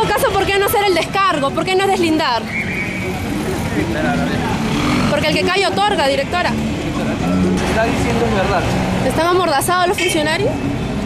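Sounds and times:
motor vehicles running: 0.0 - 11.0.

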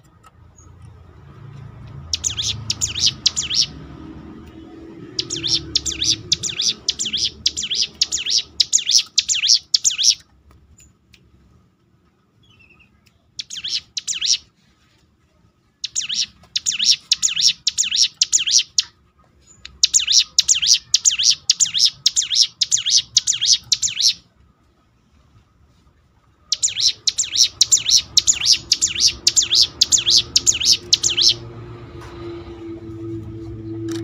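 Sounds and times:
bird singing rapid high notes: 2.0 - 3.9, 4.7 - 10.2, 12.4 - 14.5, 15.8 - 24.3, 26.5 - 31.6.

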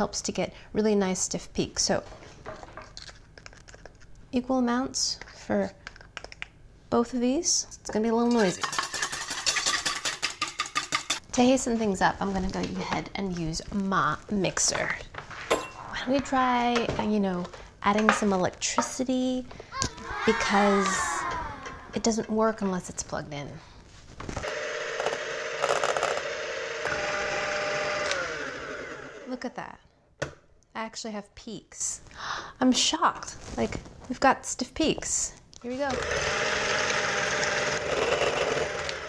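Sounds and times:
whisk clattering in bowl: 8.4 - 11.2
electric hand mixer whirring: 24.4 - 29.3, 35.9 - 39.0.

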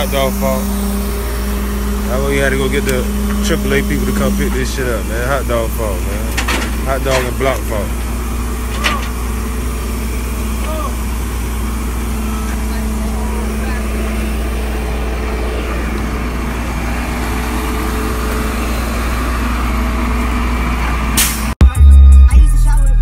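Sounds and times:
tow truck engine running: 0.0 - 21.6.

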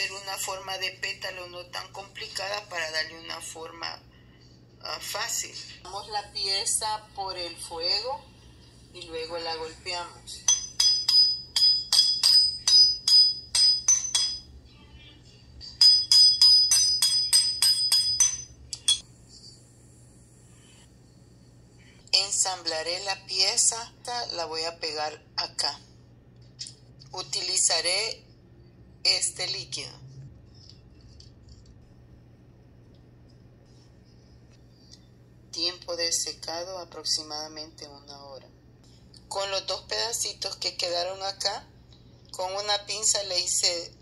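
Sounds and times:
low steady hum: 0.0 - 44.0
hammer striking wire on steel block: 10.5 - 14.5, 15.7 - 19.0.

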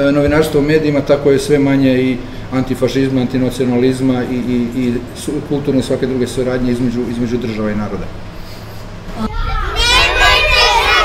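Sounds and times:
children calling out together: 9.2 - 11.0.

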